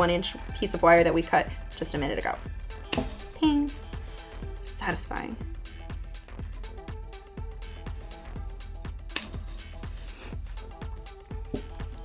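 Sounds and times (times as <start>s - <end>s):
soft background music: 0.0s - 12.0s
metallic clinks of wire: 1.0s - 4.5s, 7.4s - 12.0s.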